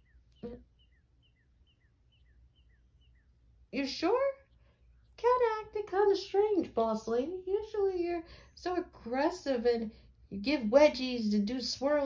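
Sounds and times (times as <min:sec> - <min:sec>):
faint bird chirps: 0:00.0 - 0:05.2.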